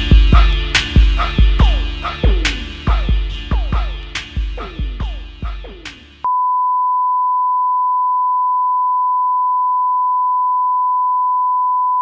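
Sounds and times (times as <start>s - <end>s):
music: 0.0s - 6.3s
single-pitch test tone: 6.3s - 12.0s.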